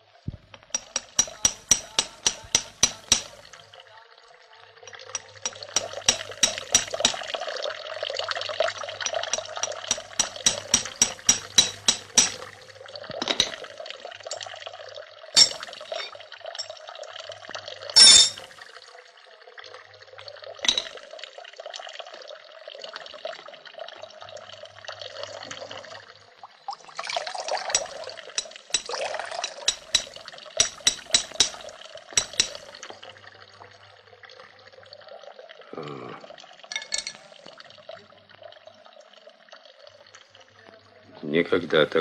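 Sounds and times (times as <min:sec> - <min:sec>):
water running from a spout: 0:00.0 - 0:42.0
sharp metallic taps and clinks: 0:00.5 - 0:03.5, 0:05.1 - 0:07.3, 0:09.3 - 0:12.5, 0:15.4 - 0:16.7, 0:18.0 - 0:18.5, 0:27.7 - 0:32.7.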